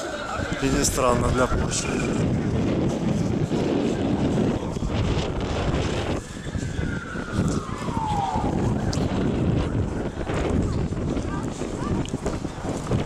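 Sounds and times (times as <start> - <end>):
street and crowd noise: 0.0 - 13.0
wind buffeting microphone: 0.0 - 13.0.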